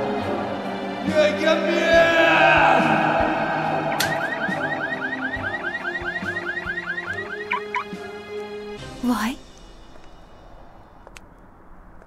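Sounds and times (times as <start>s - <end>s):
low music drone: 0.0s - 11.8s
car alarm whooping: 2.3s - 8.2s.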